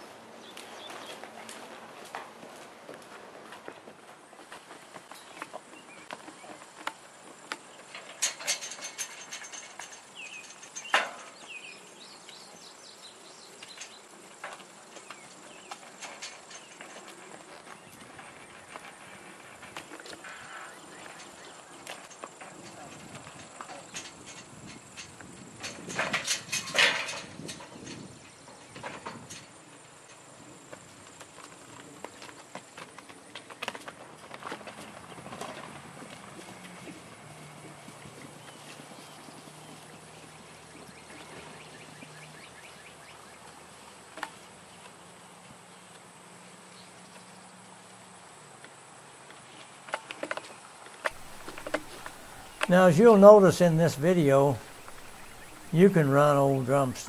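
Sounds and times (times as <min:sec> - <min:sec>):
horse hooves on dirt: 0:00.0 - 0:57.0
metal gate clanking and rattling: 0:07.9 - 0:11.7, 0:15.6 - 0:17.2, 0:20.4 - 0:29.6, 0:51.1 - 0:53.2.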